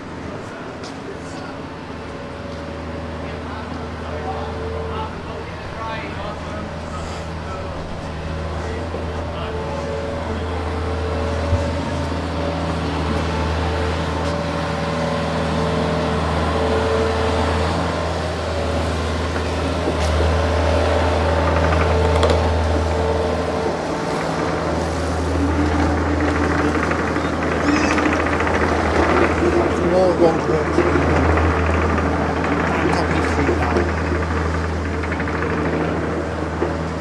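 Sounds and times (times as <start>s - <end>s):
engine running steadily: 0.0s - 37.0s
street noise: 0.0s - 37.0s.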